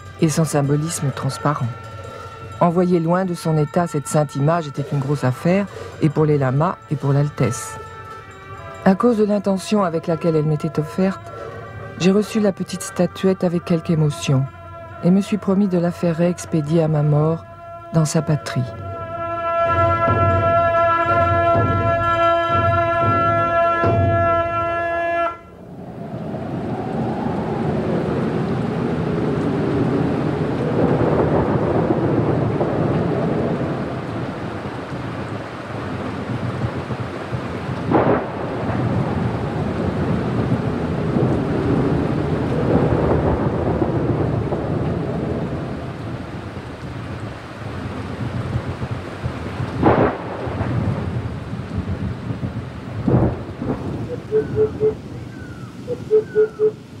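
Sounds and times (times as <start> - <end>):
steady rain: 0.0 - 57.0
rolling thunder: 18.6 - 57.0
sharp thunderclaps: 19.6 - 24.8, 25.6 - 55.6.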